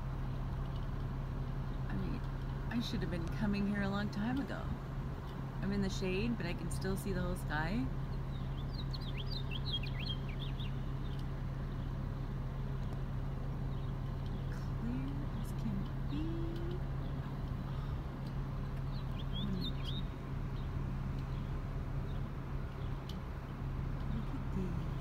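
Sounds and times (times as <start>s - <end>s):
steady low hum: 0.0s - 25.0s
small birds chirping: 5.0s - 25.0s.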